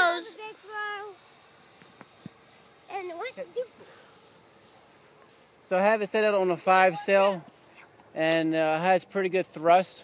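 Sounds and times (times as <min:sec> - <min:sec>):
cricket trilling: 0:00.0 - 0:10.0.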